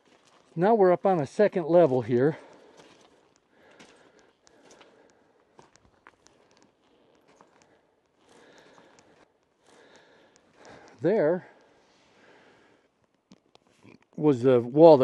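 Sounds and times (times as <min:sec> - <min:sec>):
footsteps on gravel: 0:00.0 - 0:11.4
small stone clicks: 0:02.4 - 0:11.0.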